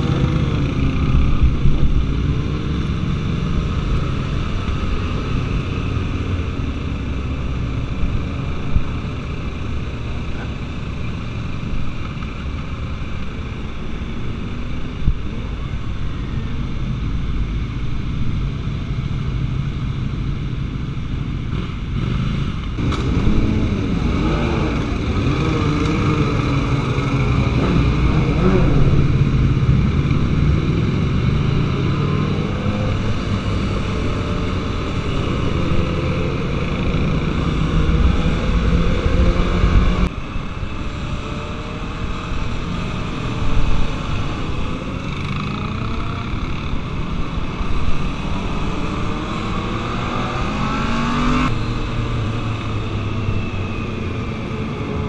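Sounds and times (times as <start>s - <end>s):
motorcycle engines: 0.0s - 55.0s
wind noise: 0.0s - 55.0s.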